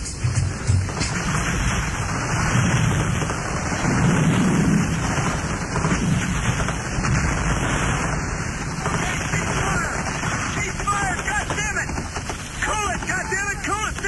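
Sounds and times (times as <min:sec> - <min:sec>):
hip-hop beat drum hits: 0:00.0 - 0:01.2
rain and thunder sound effect: 0:00.0 - 0:14.0.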